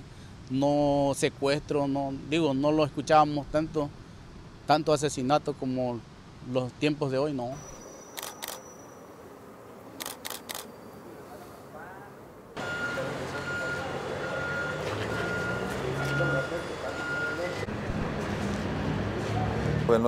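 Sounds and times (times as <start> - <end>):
street noise: 0.0 - 20.0
camera shutter clicks: 8.1 - 8.7, 10.0 - 10.7
reversing alarm beeping: 12.6 - 17.7.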